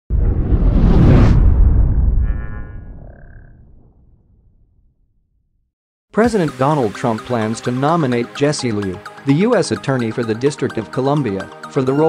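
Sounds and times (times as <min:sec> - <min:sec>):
deep rumble: 0:00.1 - 0:05.6.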